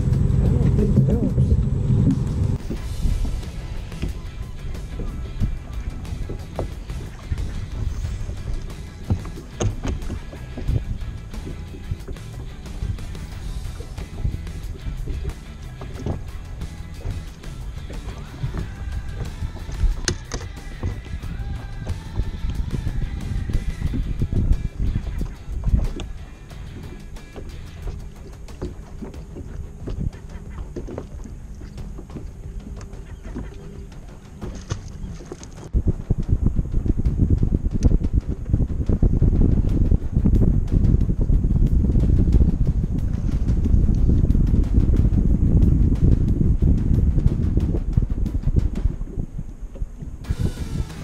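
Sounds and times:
wind buffeting microphone: 0.0 - 51.0
faint background music: 2.5 - 49.2.

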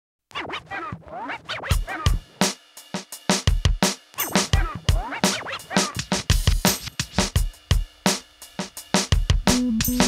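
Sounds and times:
turntable scratching: 0.3 - 2.6, 4.2 - 7.8
heavy kick drum: 3.5 - 5.2, 5.9 - 7.9, 9.0 - 10.0.

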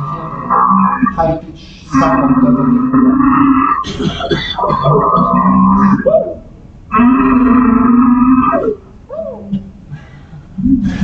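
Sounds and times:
man's voice: 0.0 - 3.2, 3.8 - 6.5.

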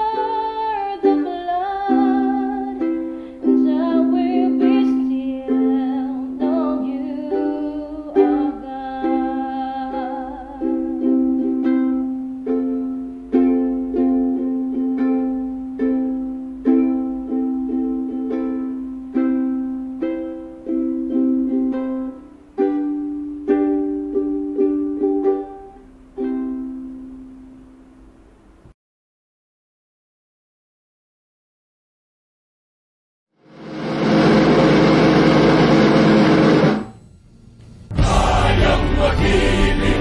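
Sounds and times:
woman singing: 0.0 - 11.2
ukulele strumming chords: 0.0 - 28.7, 33.6 - 37.0, 37.9 - 40.0.

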